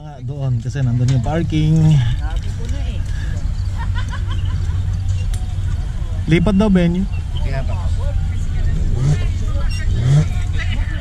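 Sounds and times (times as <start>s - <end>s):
steady low rumble: 0.0s - 11.0s
people chatting: 5.8s - 11.0s.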